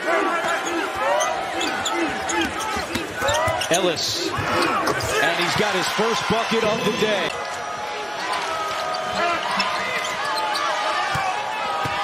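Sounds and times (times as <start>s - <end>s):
sneakers squeaking on hardwood: 1.6s - 5.2s.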